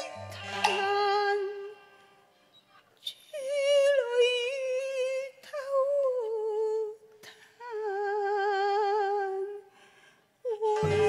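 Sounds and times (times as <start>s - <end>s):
opera singing with wide vibrato: 0.0s - 2.4s, 3.0s - 9.8s, 10.4s - 11.0s.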